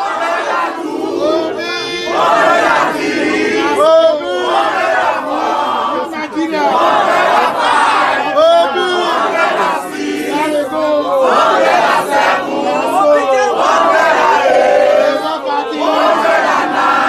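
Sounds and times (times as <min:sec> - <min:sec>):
crowd shouting: 0:00.0 - 0:17.0.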